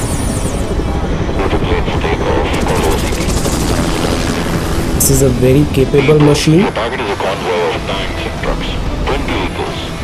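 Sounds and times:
high warbling tone: 0.0s - 1.3s
helicopter rotor and engines: 0.0s - 10.0s.

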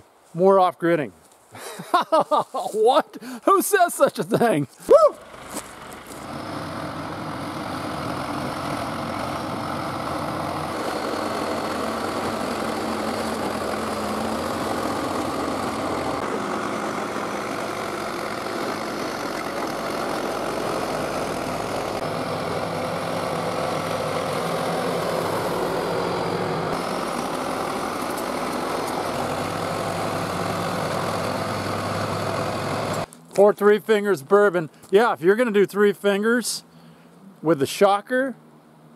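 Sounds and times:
bulldozer diesel engine running: 5.2s - 33.1s.

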